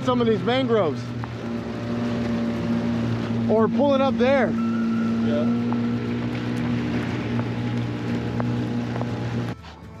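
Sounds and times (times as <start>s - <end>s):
water rushing: 0.0s - 9.5s
small boat motor humming: 0.0s - 10.0s.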